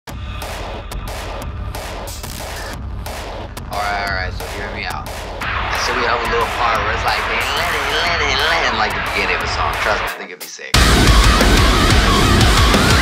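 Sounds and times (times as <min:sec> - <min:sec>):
stuttering distorted noise: 0:02.2 - 0:02.8, 0:03.6 - 0:10.2, 0:10.8 - 0:13.0
man talking: 0:03.7 - 0:05.1, 0:05.7 - 0:10.8
voice: 0:03.7 - 0:05.1, 0:05.8 - 0:10.8.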